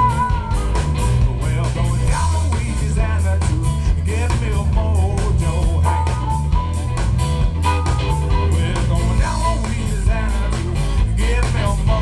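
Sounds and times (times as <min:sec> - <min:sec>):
bass: 0:00.0 - 0:12.0
drums with steady beat: 0:00.0 - 0:12.0
electric guitar: 0:00.0 - 0:12.0.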